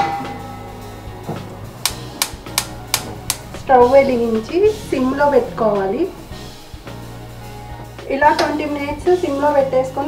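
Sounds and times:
gas stove igniter clicking: 0:01.8 - 0:03.6.

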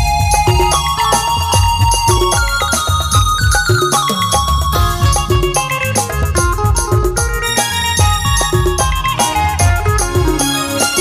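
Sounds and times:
electronic keyboard melody: 0:00.0 - 0:11.0
steady drum beat and bass: 0:00.0 - 0:11.0.

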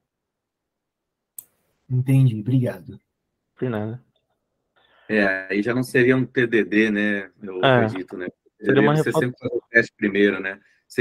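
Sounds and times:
man talking: 0:03.6 - 0:04.1, 0:05.1 - 0:11.0.

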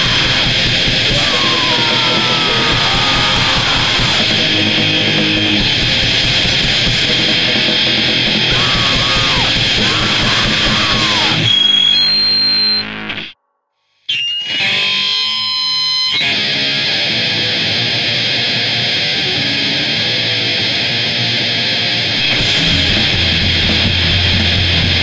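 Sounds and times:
punk band playing loud: 0:00.0 - 0:11.8, 0:16.4 - 0:25.0
guitar feedback ringing: 0:00.0 - 0:13.4, 0:14.1 - 0:25.0.

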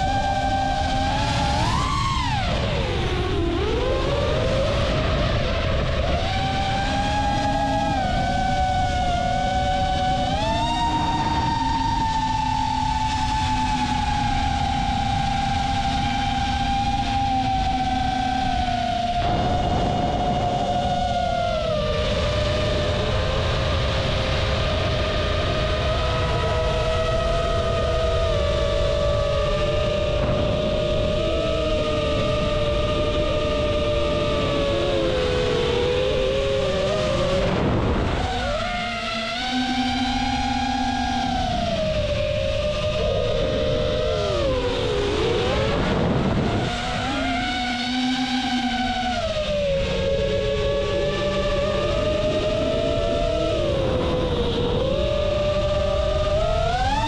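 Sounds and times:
drone propellers whining: 0:00.0 - 0:57.0
wind rushing: 0:19.2 - 0:23.0.

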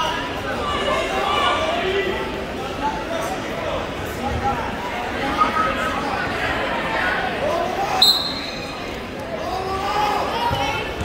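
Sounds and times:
crowd chatter: 0:00.0 - 0:11.0
referee's whistle blast: 0:08.0 - 0:08.8.

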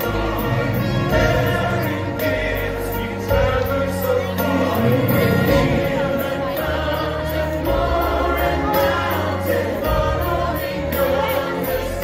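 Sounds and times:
choir singing: 0:00.0 - 0:12.0
instrumental accompaniment: 0:00.0 - 0:12.0
sustained bass notes: 0:00.0 - 0:12.0.

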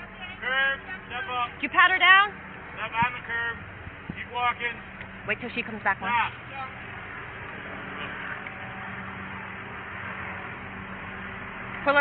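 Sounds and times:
constant low hum: 0:00.0 - 0:12.0.

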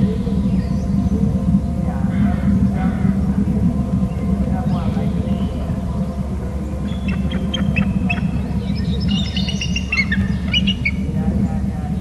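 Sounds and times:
low background rumble: 0:00.0 - 0:12.0
eagle calling: 0:06.7 - 0:11.2.

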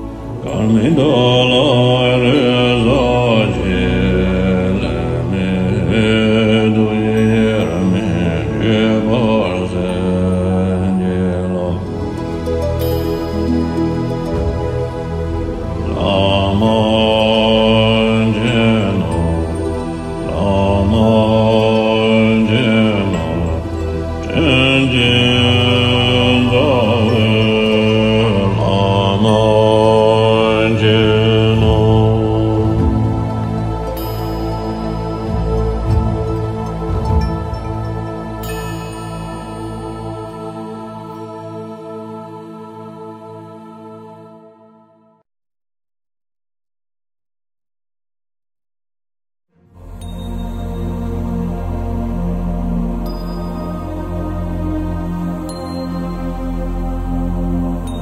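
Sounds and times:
steady low drone: 0:00.0 - 0:44.4
voice chanting long notes: 0:00.0 - 0:45.2.

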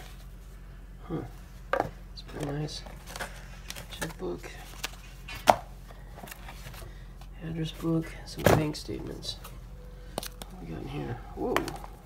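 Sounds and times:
items and papers handled in a box: 0:01.3 - 0:12.0.

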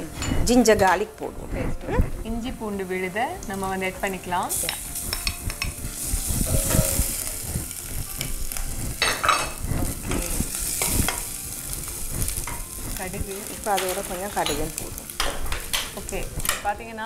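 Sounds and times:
onions sizzling in oil: 0:00.4 - 0:17.0.

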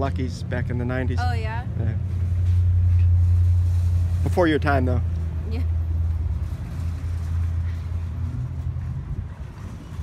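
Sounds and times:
vehicle engine humming: 0:00.0 - 0:10.0.

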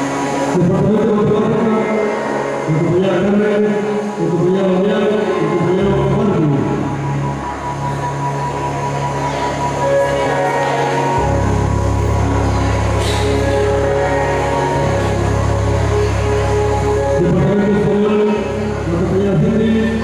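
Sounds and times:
slow instrumental music: 0:00.0 - 0:20.0.

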